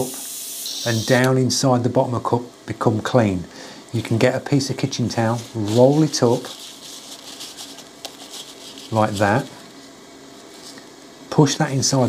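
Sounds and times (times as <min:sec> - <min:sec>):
paper towel rustling: 0:04.0 - 0:11.0.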